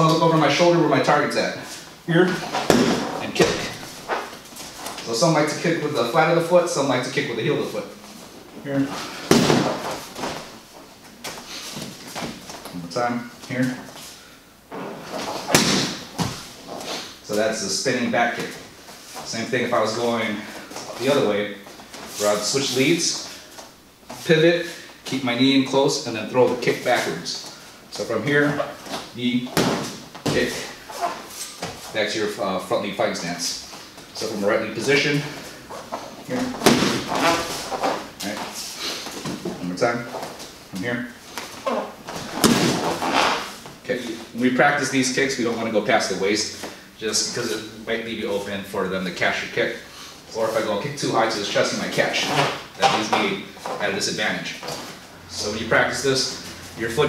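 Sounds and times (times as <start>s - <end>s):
kick hitting a kick shield: 2.6s - 3.0s, 9.3s - 9.8s, 15.5s - 16.4s, 36.6s - 37.1s, 42.4s - 42.8s.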